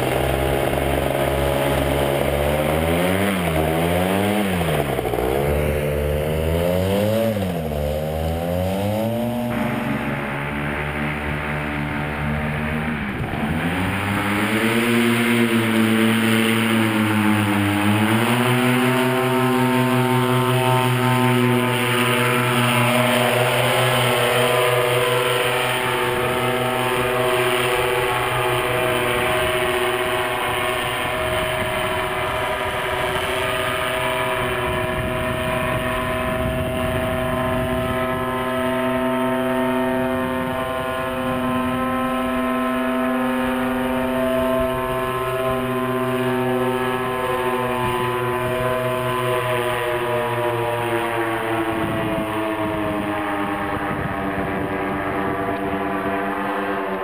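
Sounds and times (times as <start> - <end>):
paramotor engine running: 0.0 - 57.0.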